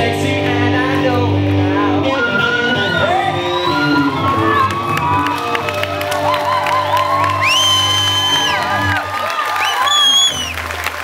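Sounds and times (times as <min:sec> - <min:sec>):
live band playing: 0:00.0 - 0:09.2
audience cheering and whooping: 0:02.0 - 0:11.0.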